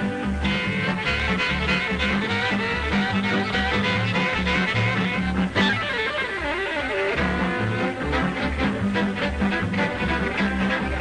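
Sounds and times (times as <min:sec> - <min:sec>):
plucked bass: 0:00.0 - 0:11.0
sliding string melody: 0:00.0 - 0:11.0.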